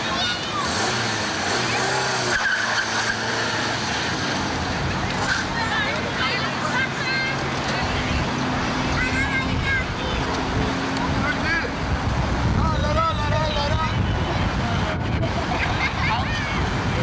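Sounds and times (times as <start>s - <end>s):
high child-like voice: 0.0s - 0.7s, 8.9s - 10.7s, 15.6s - 16.7s
outdoor background noise: 0.0s - 17.0s.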